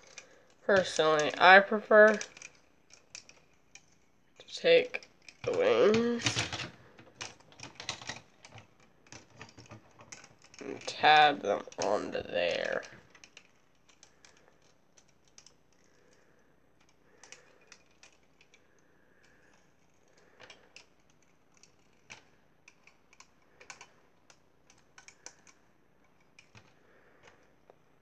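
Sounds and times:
plastic toy parts clicking: 0.0s - 27.9s.

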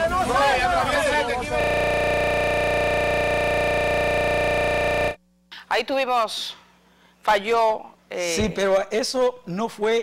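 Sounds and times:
loud electronic buzz: 1.2s - 5.2s.

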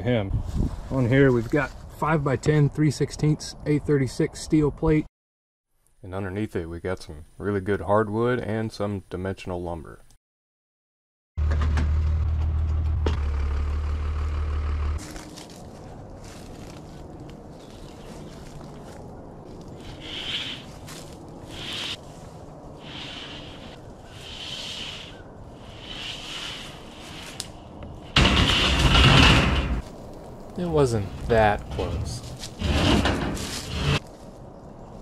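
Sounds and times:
low engine hum: 11.4s - 20.0s
steel plates scraping: 28.1s - 29.8s, 31.7s - 34.0s.

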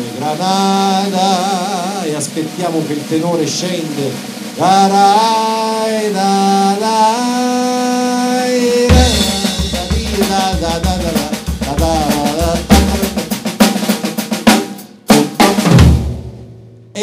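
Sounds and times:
snare and bass drum playing: 0.0s - 7.2s, 8.2s - 17.0s
man singing: 0.0s - 14.3s, 15.0s - 15.7s.

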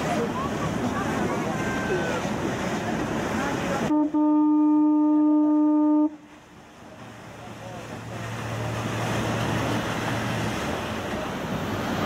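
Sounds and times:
boat horn blasts: 3.8s - 6.4s.

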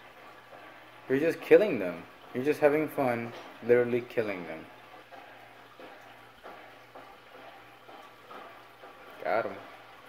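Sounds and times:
aquarium filter hum: 0.0s - 10.0s.

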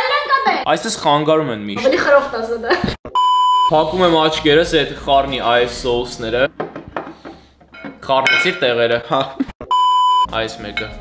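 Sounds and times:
test-tone beep: 3.1s - 3.8s, 9.6s - 10.4s
person speaking: 3.7s - 6.5s.

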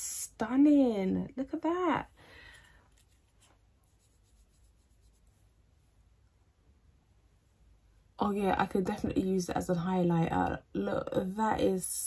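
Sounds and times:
fingertip rubbing powder: 2.9s - 6.1s.

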